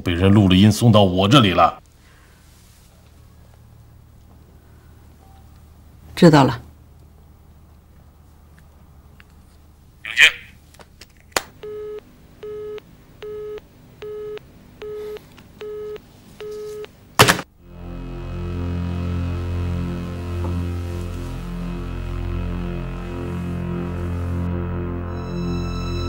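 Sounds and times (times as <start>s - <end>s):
telephone busy tone beeps: 11.6s - 16.9s
low tense music: 17.6s - 26.0s.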